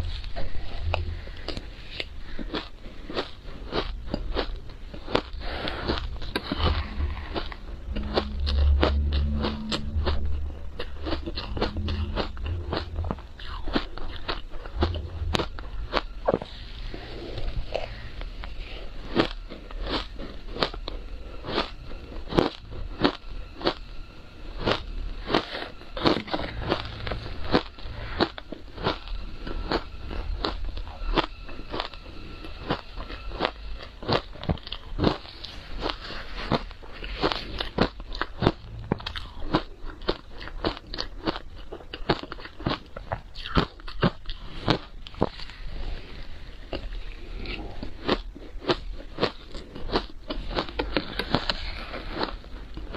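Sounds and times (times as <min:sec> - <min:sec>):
ice being chewed: 0:00.0 - 0:24.0, 0:24.6 - 0:52.9.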